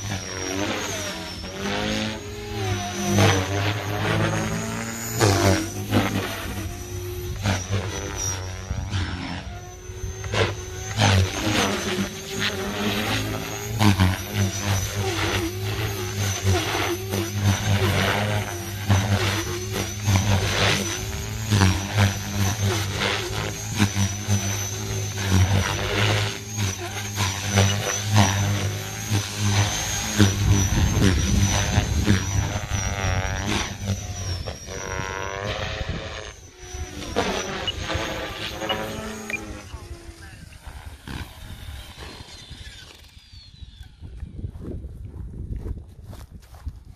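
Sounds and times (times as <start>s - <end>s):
helicopter rotor blades whooshing: 0.0s - 45.3s
high electric motor whine: 0.0s - 46.9s.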